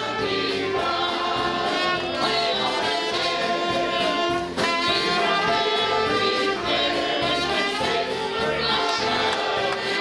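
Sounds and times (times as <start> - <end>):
gospel choir singing: 0.0 - 10.0
musical accompaniment: 0.0 - 10.0.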